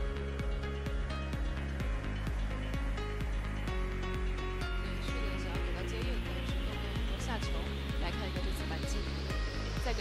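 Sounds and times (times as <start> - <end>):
music with steady beat: 0.0 - 10.0
sustained low bass: 0.0 - 10.0.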